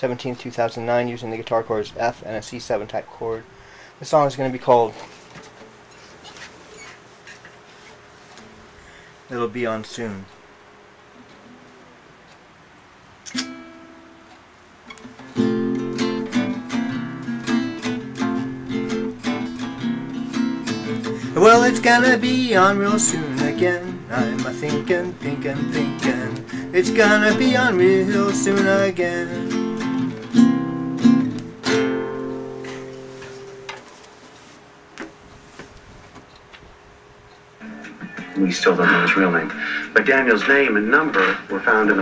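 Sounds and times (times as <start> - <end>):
acoustic guitar strumming: 13.2 - 34.0.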